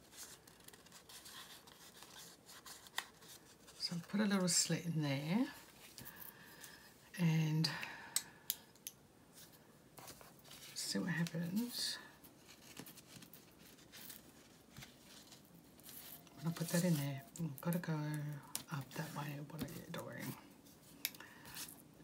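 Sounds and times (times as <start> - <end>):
paper being handled: 0.0 - 4.2, 12.3 - 17.6.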